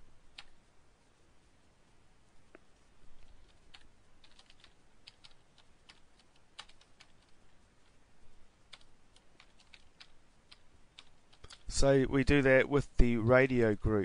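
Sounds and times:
computer keyboard typing: 0.3 - 0.6, 3.2 - 7.4, 8.7 - 11.8.

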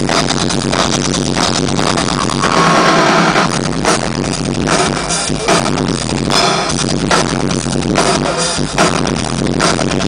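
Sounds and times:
heavy metal drum solo: 0.0 - 10.0.

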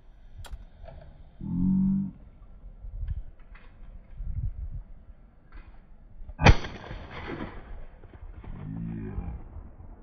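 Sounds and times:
shotgun shot with echo: 6.4 - 9.2.

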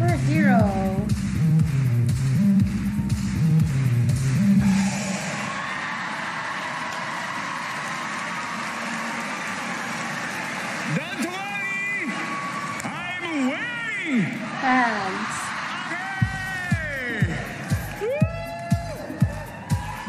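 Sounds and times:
music with heavy bass line: 0.0 - 5.5, 16.2 - 20.0
audience cheering and applauding: 4.8 - 20.0.

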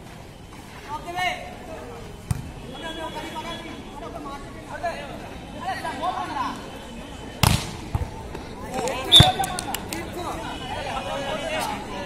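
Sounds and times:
onlookers talking and calling out: 0.6 - 12.0
ball thud: 7.4 - 8.1
hand slapping volleyball: 8.8 - 10.0.

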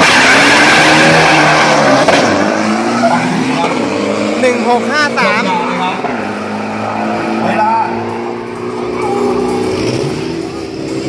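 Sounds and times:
announcer speaking: 4.4 - 6.1.

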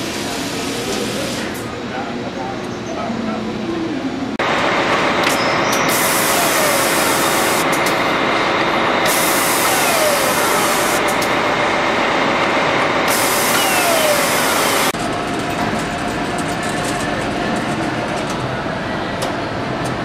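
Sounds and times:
factory din: 0.0 - 20.0
power nut runner whining: 5.2 - 11.6, 12.8 - 15.0.

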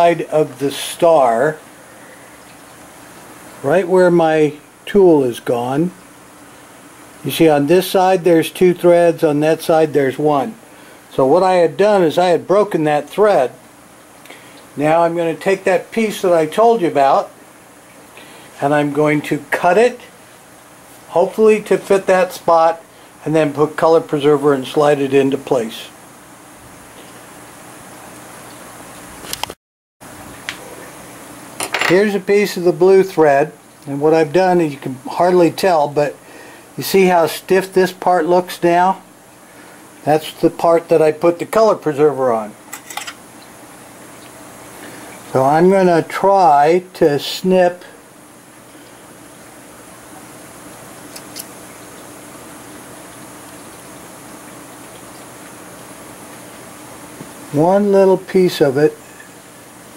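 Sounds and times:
room hiss: 0.0 - 59.9.

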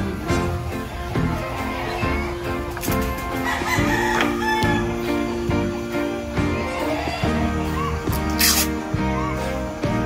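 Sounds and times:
background music: 0.0 - 10.0
rooster crowing: 3.4 - 5.1.

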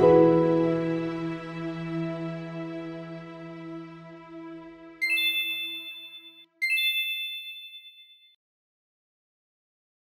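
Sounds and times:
soft background music: 0.0 - 5.8
bright chime ding: 5.0 - 8.4.

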